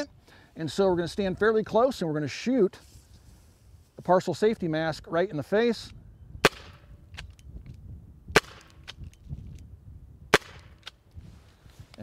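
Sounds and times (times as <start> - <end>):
air pistol pops: 6.4 - 7.5, 8.3 - 9.2, 10.3 - 11.0.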